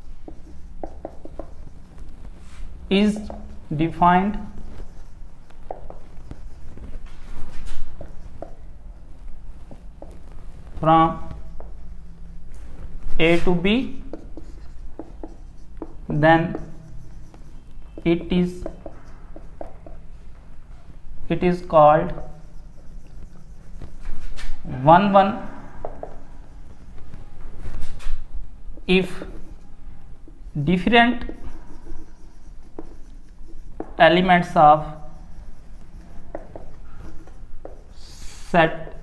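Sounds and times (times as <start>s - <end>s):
marker writing on a whiteboard: 0.0s - 39.0s.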